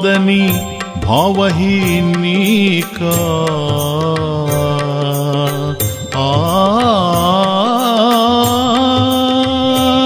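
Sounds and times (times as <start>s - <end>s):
devotional song melody: 0.0s - 10.0s
light rhythmic percussion: 0.0s - 10.0s.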